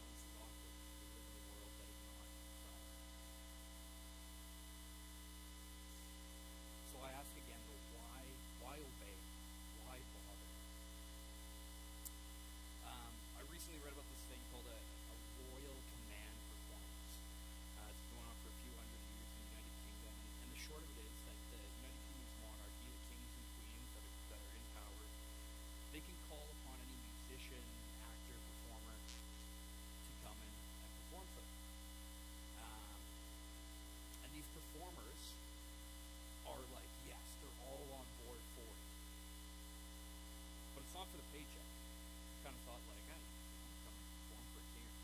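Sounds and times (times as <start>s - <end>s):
faint man's voice: 0.0s - 4.0s, 6.8s - 9.2s, 9.8s - 10.6s, 12.8s - 25.2s, 25.9s - 29.2s, 30.1s - 31.5s, 32.6s - 33.1s, 34.2s - 35.4s, 36.4s - 38.8s, 40.8s - 41.7s, 42.4s - 45.0s
faint indistinct speech: 0.0s - 4.2s, 5.8s - 9.2s, 9.8s - 10.6s, 12.8s - 25.2s, 25.9s - 29.3s, 30.1s - 31.5s, 32.6s - 33.1s, 34.2s - 35.4s, 36.4s - 38.8s, 40.8s - 41.7s, 42.4s - 45.0s
electrical mains hum: 0.0s - 45.0s.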